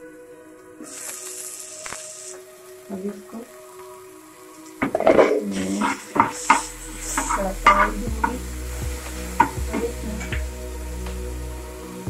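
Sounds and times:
light sizzle of frying: 0.6s - 12.0s.

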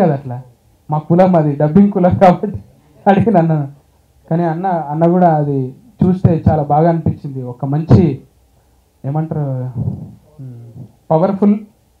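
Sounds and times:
man speaking into a microphone: 0.0s - 8.3s, 9.0s - 11.8s.

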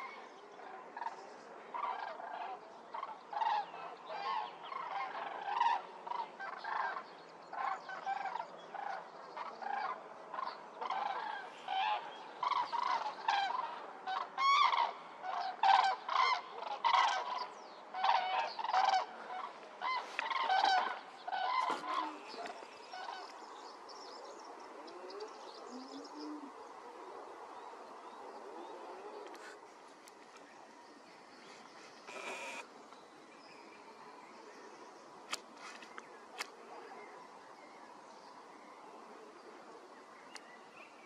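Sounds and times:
geese honking in flight: 10.8s - 23.2s.

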